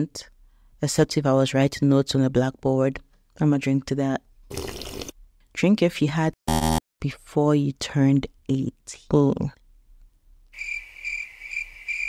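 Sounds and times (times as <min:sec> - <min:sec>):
cricket chirping: 0:10.6 - 0:12.0.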